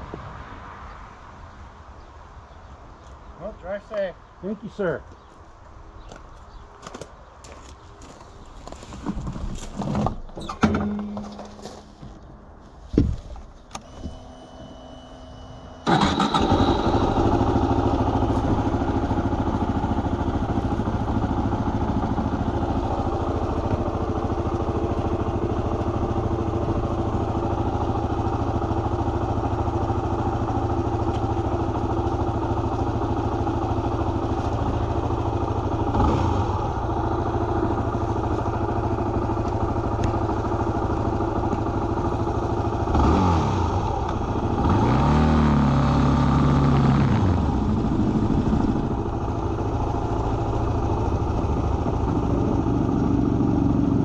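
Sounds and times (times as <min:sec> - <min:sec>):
motorcycle engine idling: 0:15.8 - 0:44.6, 0:45.7 - 0:54.0.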